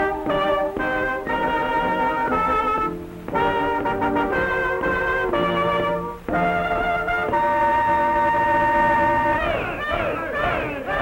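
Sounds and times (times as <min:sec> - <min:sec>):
brass horn fanfare: 0:00.0 - 0:11.0.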